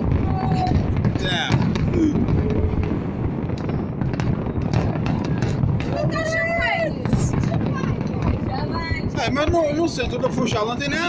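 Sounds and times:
fireworks bursts and crackles: 0.0s - 11.0s.

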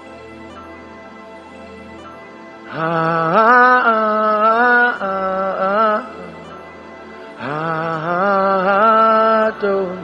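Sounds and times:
soft background music pad: 0.0s - 10.0s
man chanting sustained note: 2.7s - 10.0s.

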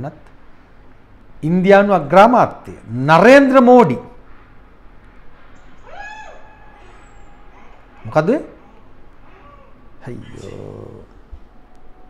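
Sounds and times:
high-pitched cry: 5.8s - 11.1s.

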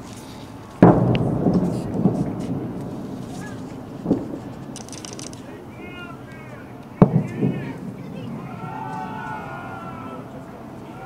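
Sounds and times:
rolling rumble: 0.0s - 11.0s
small firework bangs: 0.8s - 9.9s
fireworks booming: 0.8s - 10.4s.

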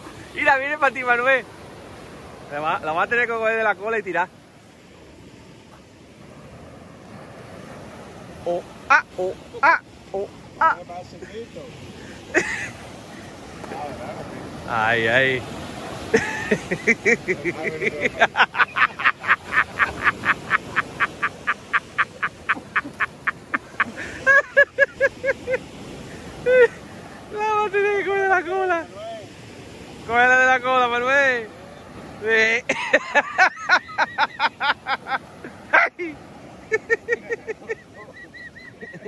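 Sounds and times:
person laughing breathlessly: 16.2s - 26.9s.

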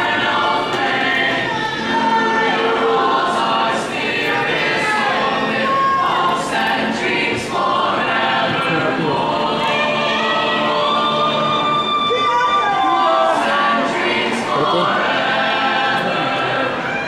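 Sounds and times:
choir singing in harmony: 0.0s - 17.0s.

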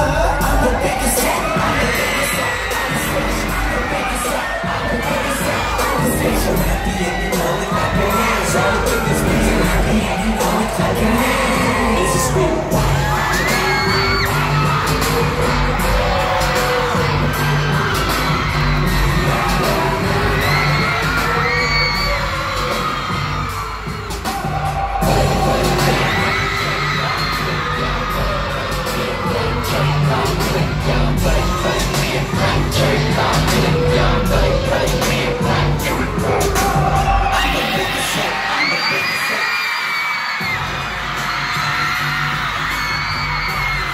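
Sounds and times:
audience cheering: 0.0s - 43.9s
dance track over sound system: 0.0s - 43.9s.

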